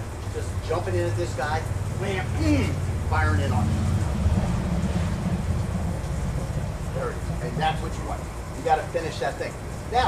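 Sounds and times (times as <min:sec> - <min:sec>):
low background rumble: 0:01.1 - 0:08.6.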